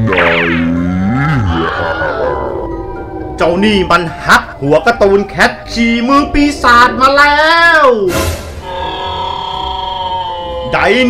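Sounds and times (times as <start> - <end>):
background music: 0.0 - 11.0
deep creature groan: 0.6 - 3.2.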